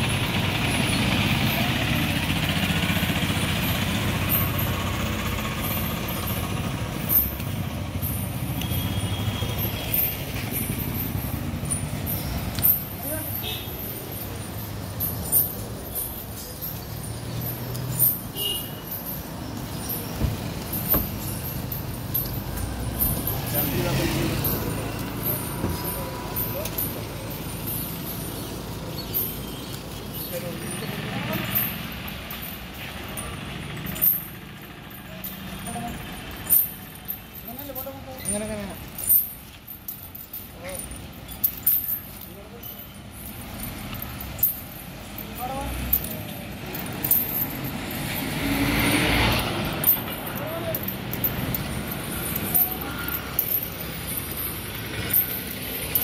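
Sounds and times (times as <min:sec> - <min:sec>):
vehicle engine rumbling past: 0:00.0 - 0:13.1, 0:13.7 - 0:39.2, 0:43.1 - 0:56.0
metal chain clinks: 0:00.0 - 0:56.0
people's voices: 0:19.2 - 0:39.2, 0:45.0 - 0:56.0.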